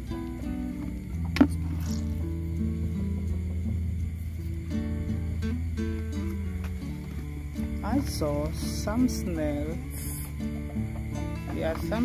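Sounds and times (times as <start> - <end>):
background music of held notes: 0.0 - 12.0
low bass line: 0.0 - 12.0.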